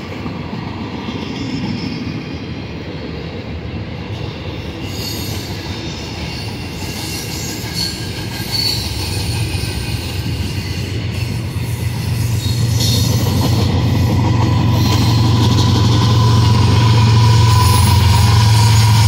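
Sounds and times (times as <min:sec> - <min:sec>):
diesel locomotive engine drone: 0:00.0 - 0:19.0
train wheels rolling on rails: 0:00.0 - 0:19.0
wheel squeal: 0:06.3 - 0:19.0.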